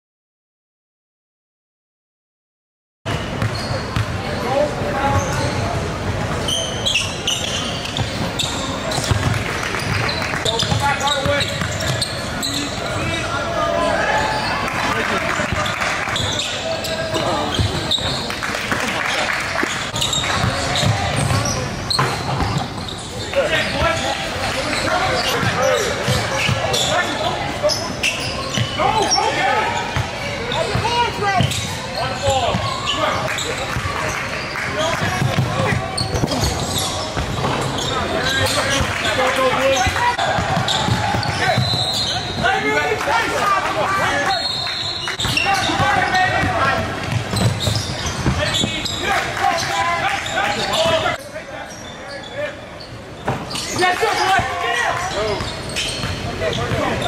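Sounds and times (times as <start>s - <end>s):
basketball bouncing on court: 7.5s - 12.3s, 19.6s - 22.9s, 35.0s - 37.5s, 39.8s - 42.4s, 45.2s - 49.0s, 55.4s - 57.0s
players shouting: 23.2s - 33.6s, 37.7s - 51.2s, 53.7s - 57.0s.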